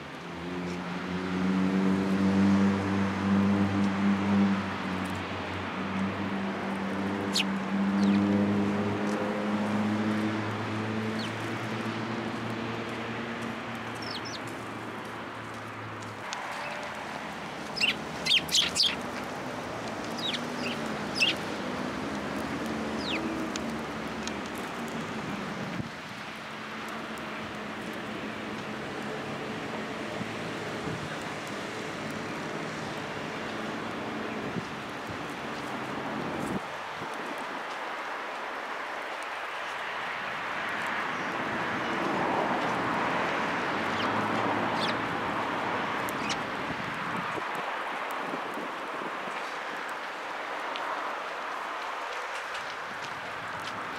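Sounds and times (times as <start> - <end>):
sparrows chirping: 7.2 - 8.3, 11.2 - 11.4, 14.0 - 14.5, 17.7 - 19.1, 20.1 - 21.5, 22.9 - 23.3, 43.9 - 45.0, 46.2 - 46.4.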